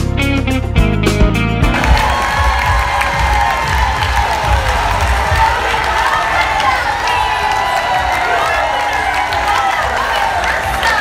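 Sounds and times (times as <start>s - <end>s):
guitar music: 0.0s - 2.8s
audience cheering and applauding: 1.6s - 11.0s.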